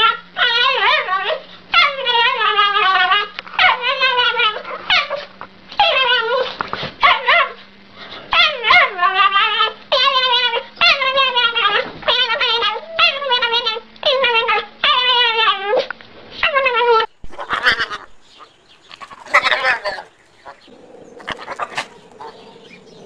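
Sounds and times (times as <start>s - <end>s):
small dog whine-howling: 0.0s - 7.6s, 8.3s - 18.0s, 19.2s - 23.0s.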